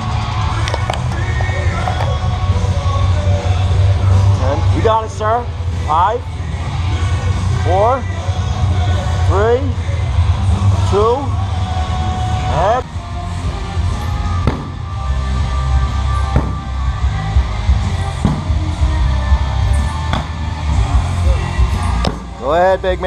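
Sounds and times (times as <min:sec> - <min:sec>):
music with heavy bass beat: 0:00.0 - 0:23.0
sledgehammer striking tire: 0:14.4 - 0:14.8, 0:16.3 - 0:16.7, 0:18.2 - 0:18.6, 0:22.0 - 0:22.3.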